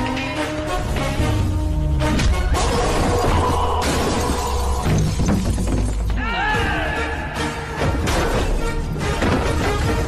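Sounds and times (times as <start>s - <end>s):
action film score: 0.0s - 10.0s.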